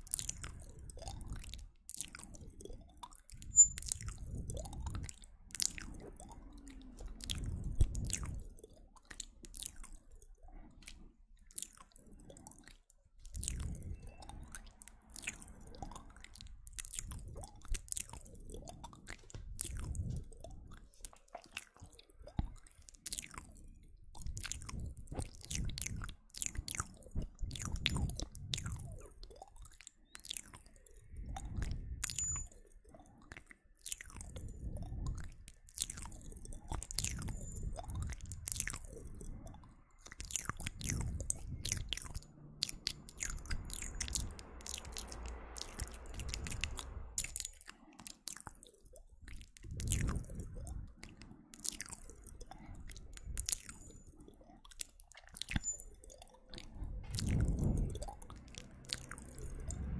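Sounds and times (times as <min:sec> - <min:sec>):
wet lip and tongue clicks: 0:00.0 - 0:59.9
soft low swells: 0:40.5 - 0:47.6, 0:56.7 - 0:59.9.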